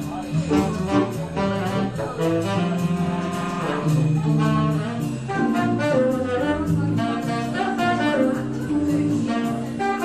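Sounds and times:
bass line: 0:00.0 - 0:10.0
keyboard chords: 0:00.0 - 0:10.0
saxophone melody: 0:00.4 - 0:10.0.

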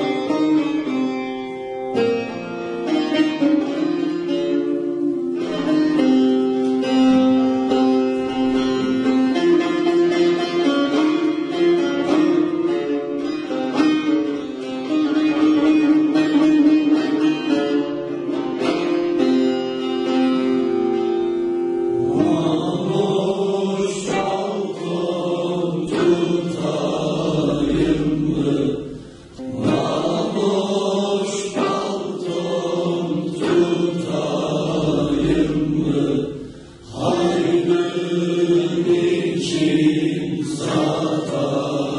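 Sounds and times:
plucked lute folk melody: 0:00.0 - 0:41.9
young men singing together: 0:22.0 - 0:41.9.

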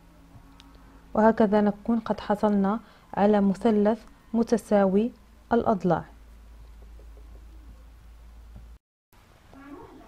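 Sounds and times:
low steady hum: 0:00.0 - 0:10.0
faint background sounds: 0:09.4 - 0:10.0.

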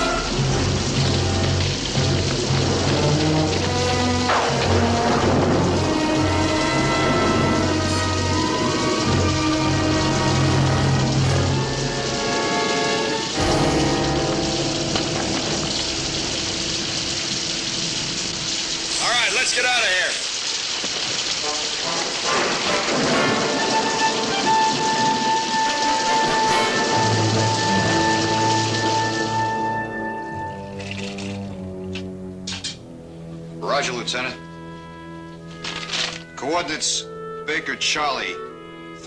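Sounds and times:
orchestral film score: 0:00.0 - 0:20.5, 0:21.1 - 0:39.0
steady rain falling: 0:00.0 - 0:39.0.

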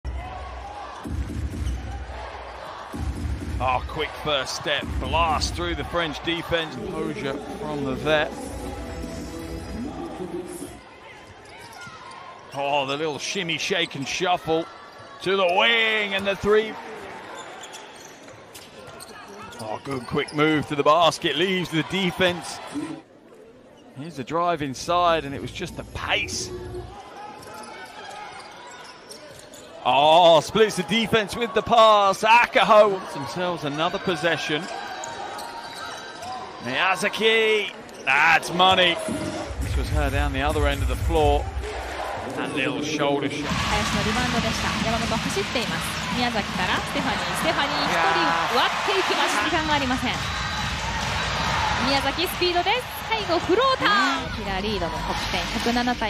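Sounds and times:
arena crowd noise: 0:00.0 - 0:56.0
commentator talking: 0:03.6 - 0:08.6, 0:42.4 - 0:50.2, 0:51.8 - 0:56.0.

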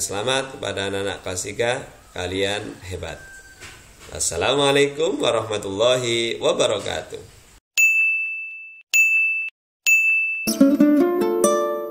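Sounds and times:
notification bell dings: 0:07.8 - 0:10.8.

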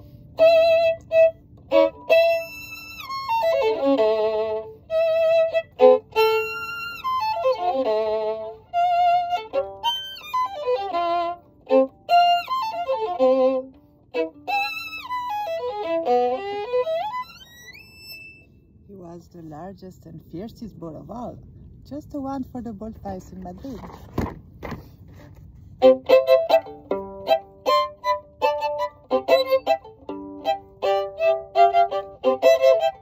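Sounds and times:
solo violin playing: 0:00.0 - 0:18.8, 0:25.4 - 0:33.0.

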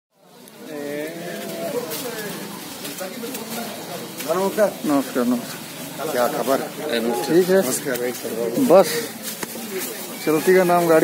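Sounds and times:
outdoor background noise: 0:00.1 - 0:11.0
men talking: 0:00.6 - 0:11.0.

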